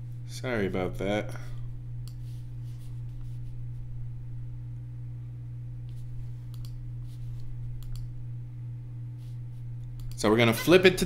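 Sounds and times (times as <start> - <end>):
steady low hum: 0.0 - 11.0
computer mouse clicking: 6.5 - 6.8, 7.8 - 8.1, 9.9 - 10.2.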